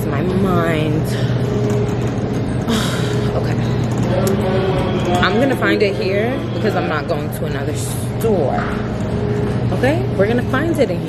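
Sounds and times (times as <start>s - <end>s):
refrigerator and ventilation hum: 0.0s - 11.0s.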